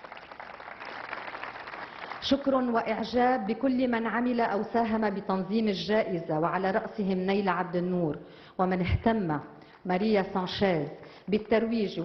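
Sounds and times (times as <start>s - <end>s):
audience applauding: 0.0s - 2.2s.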